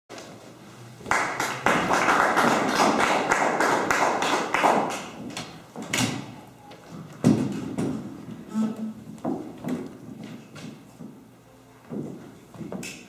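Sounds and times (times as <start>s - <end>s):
audience applauding: 1.1s - 5.2s.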